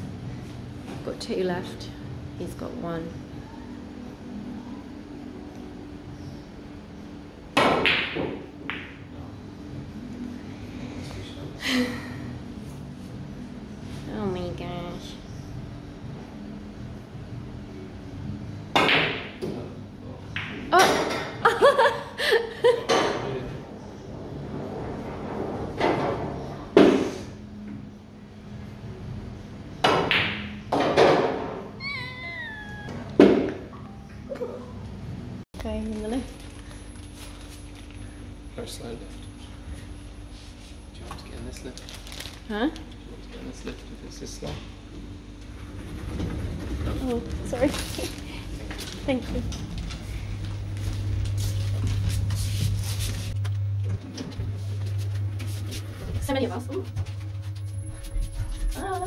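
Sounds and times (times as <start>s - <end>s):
steady low hum: 0.0s - 7.6s, 8.3s - 30.7s, 31.6s - 59.0s
pool cue striking ball: 7.6s - 9.0s
high falling cry: 31.8s - 33.1s.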